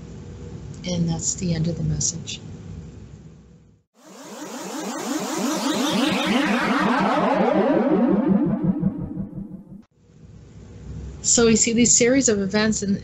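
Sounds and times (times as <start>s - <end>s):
pulsing electronic drone: 4.0s - 9.8s
falling synth sweep: 4.0s - 9.9s.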